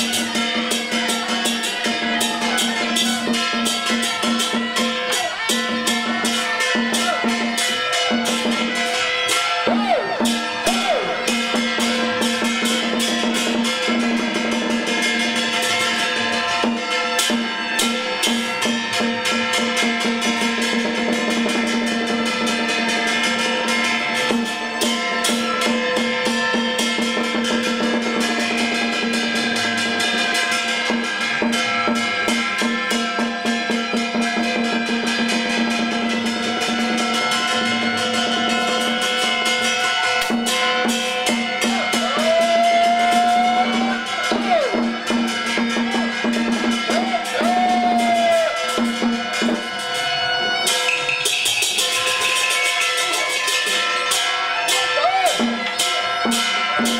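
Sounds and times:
fast drumming: 0.0s - 56.9s
metal percussion: 0.0s - 56.9s.

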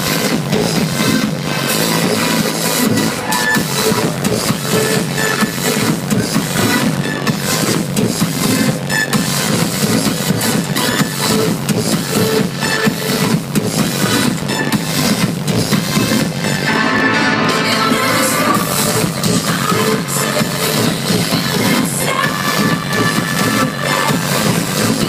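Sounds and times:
loud electronic dance music: 0.0s - 25.0s.

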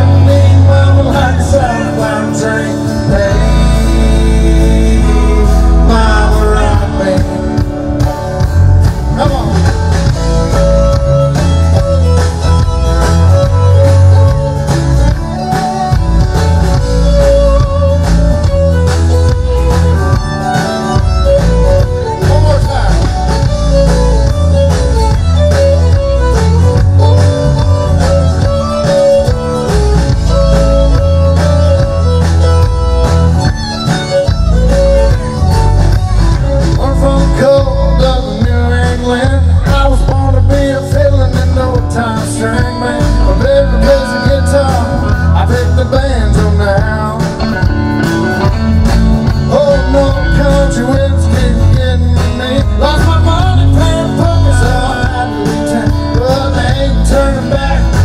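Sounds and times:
bass guitar: 0.0s - 58.0s
drum kit: 0.0s - 58.0s
electric guitar lead: 0.0s - 58.0s.

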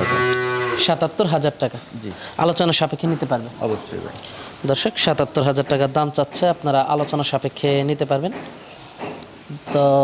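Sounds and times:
cow mooing: 0.0s - 1.0s.

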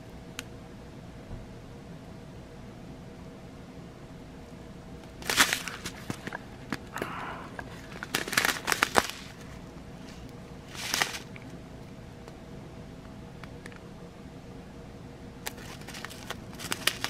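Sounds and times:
plastic bag crinkling: 5.2s - 7.0s, 7.6s - 9.6s, 10.7s - 11.4s, 15.5s - 17.0s.

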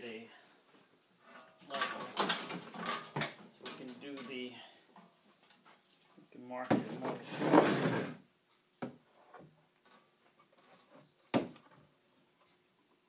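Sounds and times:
level scraping on wooden plank: 6.8s - 8.3s.

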